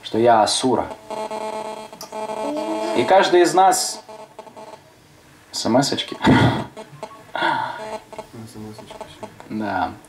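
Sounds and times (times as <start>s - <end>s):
steady buzzing chord: 0.6s - 5.0s.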